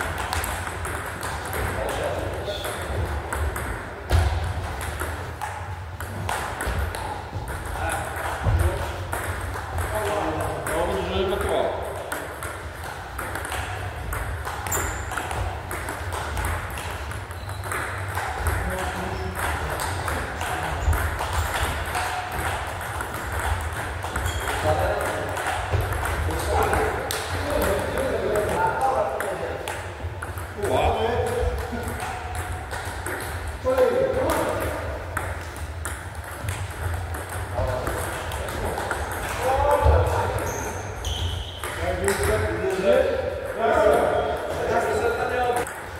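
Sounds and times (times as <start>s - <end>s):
ping pong ball bouncing on table: 0.0s - 42.9s, 45.5s - 45.9s
ping pong ball clicking off paddles: 0.0s - 45.9s.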